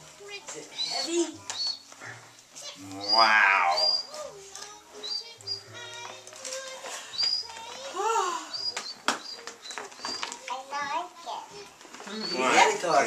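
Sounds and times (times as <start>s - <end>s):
music: 0.0s - 13.0s
plastic packaging crinkling: 8.6s - 13.0s.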